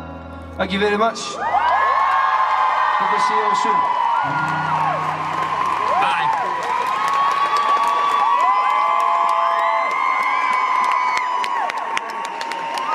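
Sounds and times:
audience cheering and screaming: 1.3s - 12.9s
scattered clapping: 4.7s - 12.9s.

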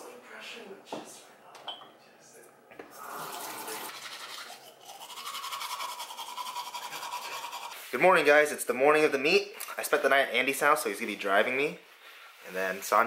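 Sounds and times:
toothbrush scrubbing teeth: 2.9s - 7.9s.

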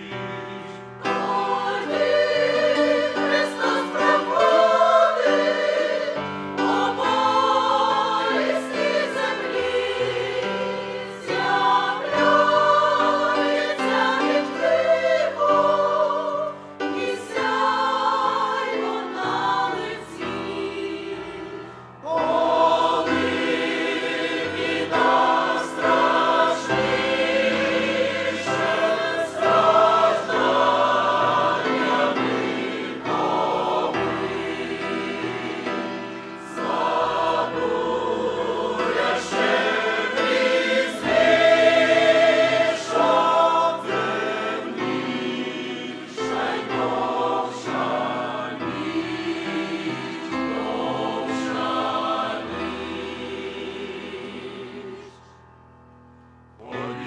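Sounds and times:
choir singing a hymn: 0.0s - 55.6s, 56.6s - 57.0s.

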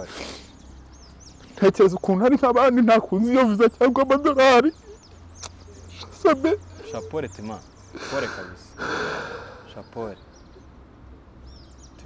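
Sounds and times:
man sobbing: 7.9s - 9.8s.

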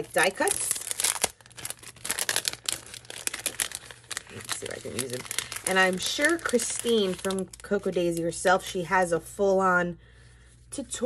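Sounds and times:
cellophane bag crinkling: 0.0s - 8.4s.

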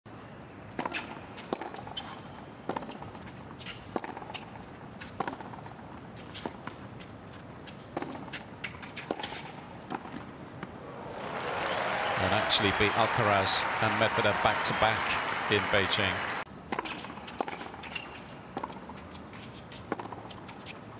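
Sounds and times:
crowd applause and cheering: 10.8s - 16.4s.

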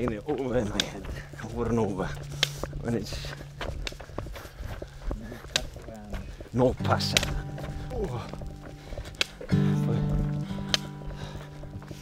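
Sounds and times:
footsteps on a trail: 0.0s - 12.0s.

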